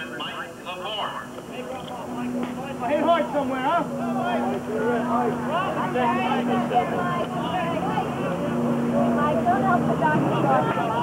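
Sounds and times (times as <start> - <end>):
crowd chattering and calling: 0.0 - 11.0
steady low hum: 0.0 - 11.0.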